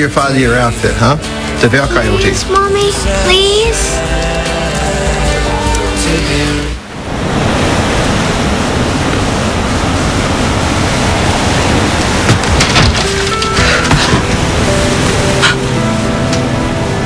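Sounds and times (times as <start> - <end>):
soft background music: 0.0 - 6.8, 12.9 - 17.0
shower water running: 8.4 - 17.0.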